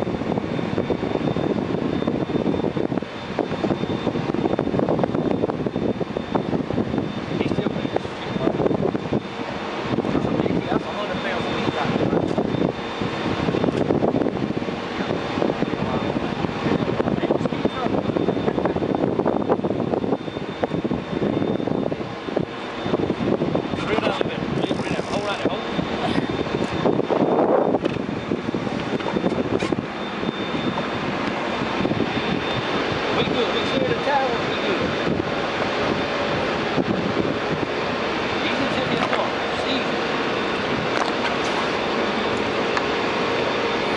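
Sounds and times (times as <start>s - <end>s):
boat engine running: 0.0s - 43.9s.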